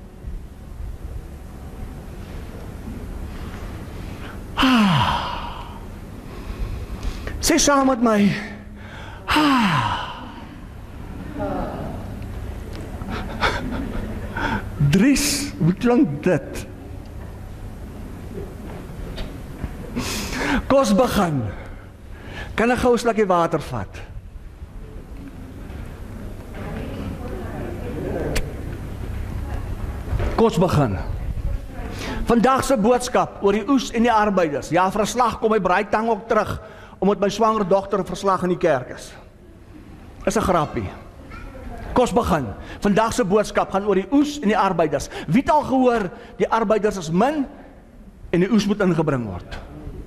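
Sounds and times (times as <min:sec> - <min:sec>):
steady low rumble: 0:00.0 - 0:20.0
man sighing: 0:04.6 - 0:05.8, 0:09.2 - 0:10.5.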